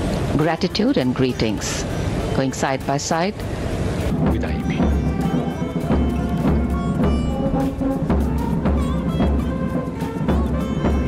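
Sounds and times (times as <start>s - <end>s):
bass drum beating: 4.0s - 11.0s
brass holding steady notes: 4.1s - 11.0s
military band playing a march: 4.1s - 11.0s.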